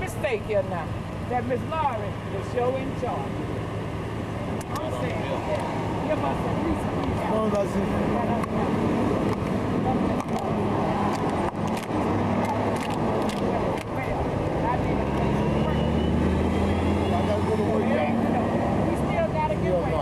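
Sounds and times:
voices chatting and laughing: 0.0s - 20.0s.

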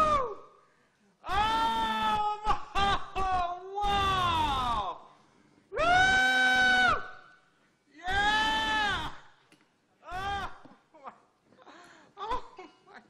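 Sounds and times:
man wailing and weeping: 1.2s - 5.1s, 5.8s - 7.1s, 10.0s - 11.3s, 12.2s - 12.8s.

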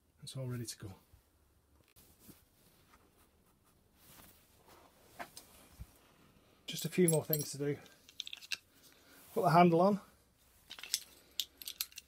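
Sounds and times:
metal fittings clinking: 6.8s - 8.6s, 10.7s - 12.0s.

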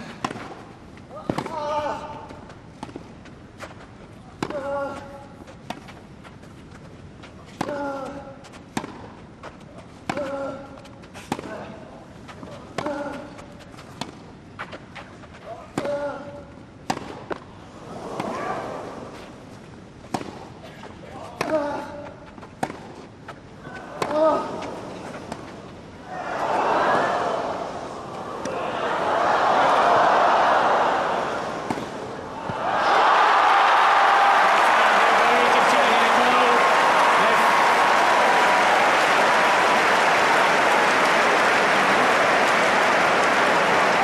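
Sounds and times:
racket hitting tennis ball: 0.0s - 0.6s, 1.2s - 1.8s, 7.6s - 9.1s, 12.4s - 16.0s, 16.8s - 17.4s, 20.0s - 23.1s, 31.6s - 32.6s
crowd noise: 23.6s - 44.0s.

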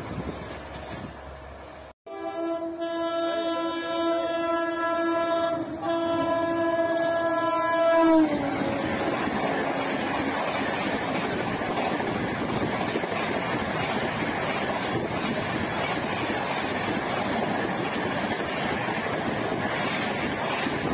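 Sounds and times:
passing train coaches clattering: 0.0s - 20.9s
locomotive horn blast: 2.1s - 10.0s.

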